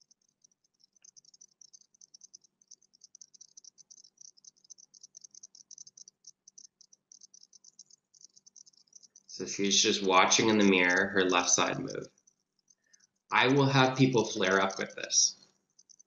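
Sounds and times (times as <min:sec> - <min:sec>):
faint high-pitched crackle: 0:00.0 - 0:16.0.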